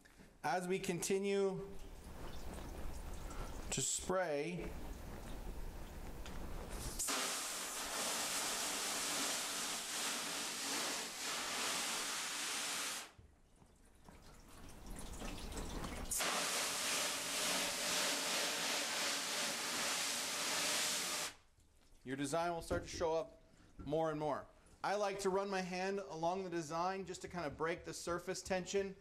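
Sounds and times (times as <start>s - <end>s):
hose spray hissing on screen: 6.7s - 13.1s, 16.1s - 21.4s.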